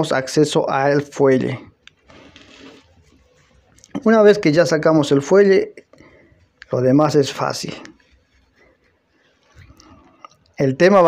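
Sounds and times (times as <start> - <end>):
wire scraping against rubber: 2.0 - 3.7.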